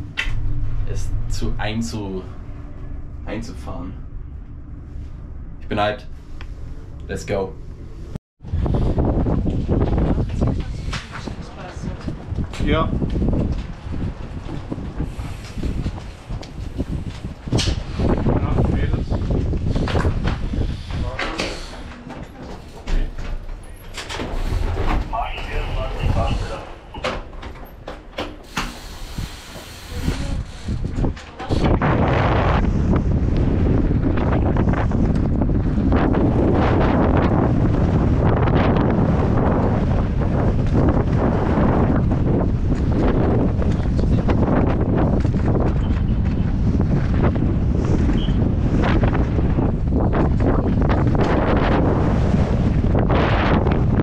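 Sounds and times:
wind rushing on microphone: 0.0 - 54.0.

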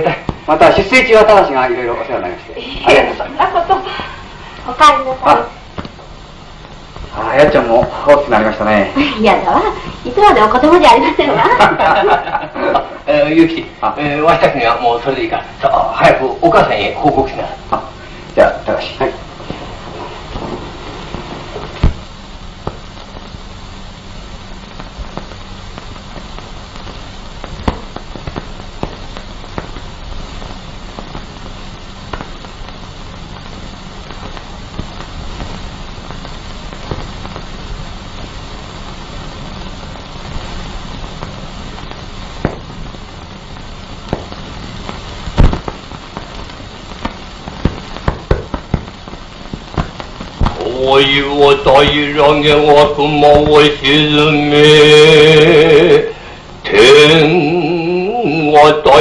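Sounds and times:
film soundtrack hiss: 0.0 - 59.0
clicks and pops: 5.7 - 7.1, 19.3 - 54.0.

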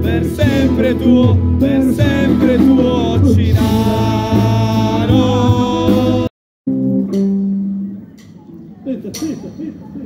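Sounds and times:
live band closing chord: 0.0 - 8.4.

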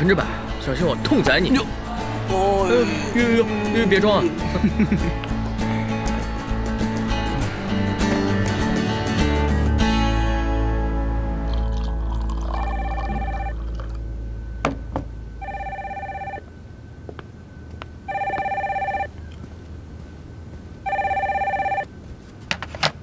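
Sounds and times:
background music: 0.0 - 16.4
telephone ringing: 12.6 - 13.6, 15.4 - 16.4, 18.1 - 19.1, 20.8 - 21.9.

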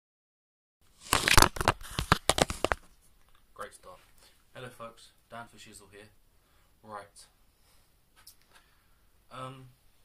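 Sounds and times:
webcam handling rustle and crackle: 1.0 - 3.4.

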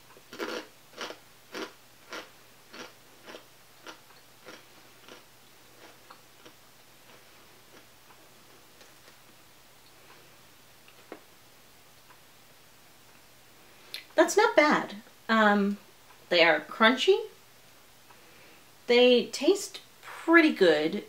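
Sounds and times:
chewing crunchy chip: 0.3 - 7.9.

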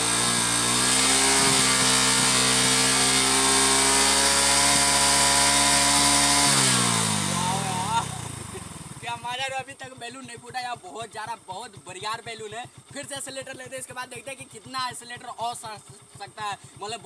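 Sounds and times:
motorcycle engine revving: 0.0 - 17.0.

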